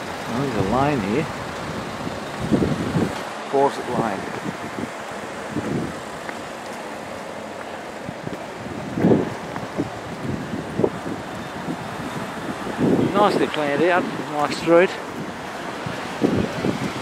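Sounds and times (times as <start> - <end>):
traffic: 0.0 - 17.0
wind buffeting microphone: 0.0 - 17.0.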